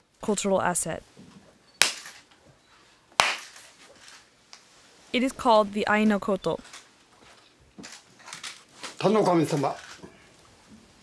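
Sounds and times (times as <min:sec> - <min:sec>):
sharp hand claps: 0:03.2 - 0:03.6.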